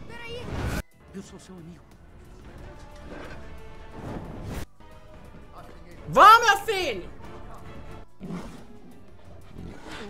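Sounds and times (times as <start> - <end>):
background soundtrack music: 0.0 - 10.0
large creature growling: 8.2 - 10.0.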